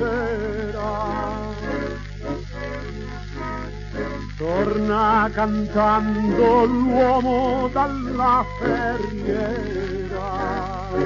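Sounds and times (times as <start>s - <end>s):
person singing: 0.0s - 2.2s, 4.3s - 11.0s
tango on gramophone record: 0.0s - 11.0s.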